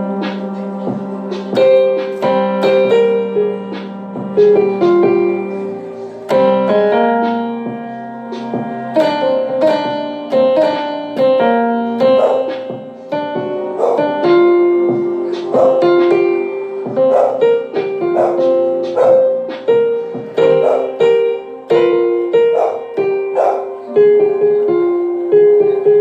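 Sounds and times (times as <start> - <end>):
electronic keyboard piano melody: 0.0 - 26.0.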